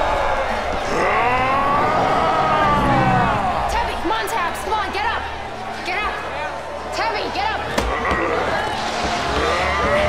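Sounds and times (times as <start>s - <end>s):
crowd whooping and cheering: 0.0s - 10.0s.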